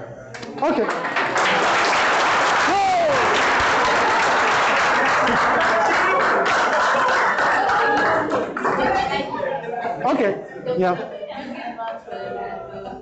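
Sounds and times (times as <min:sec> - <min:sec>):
students applauding: 0:00.4 - 0:09.4
person whooping: 0:02.6 - 0:03.4.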